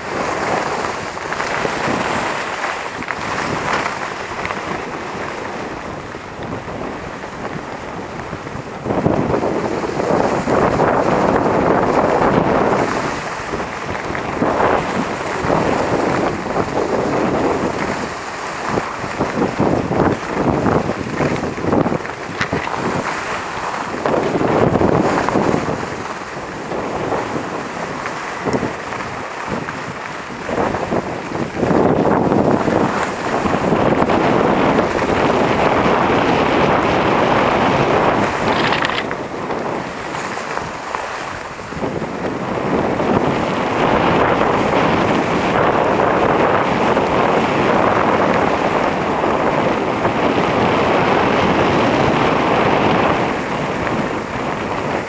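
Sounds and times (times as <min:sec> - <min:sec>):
skis scraping on snow: 0:00.0 - 0:55.0
wind rushing over microphone: 0:00.0 - 0:55.0.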